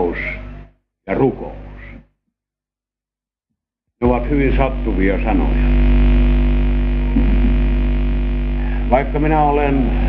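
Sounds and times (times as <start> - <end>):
man speaking: 1.1 - 1.6, 4.0 - 5.8, 8.6 - 10.0
electrical mains hum: 4.0 - 10.0.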